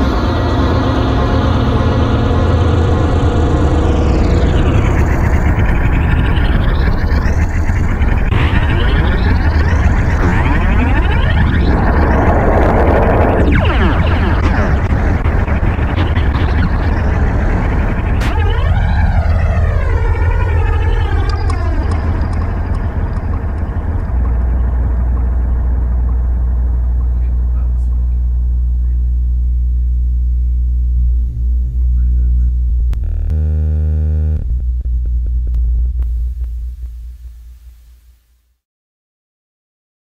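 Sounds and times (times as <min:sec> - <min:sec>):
sweeping synth sound: 0:00.0 - 0:28.7
deep synth bass: 0:00.0 - 0:38.3
buzzy synth chord: 0:00.0 - 0:38.4.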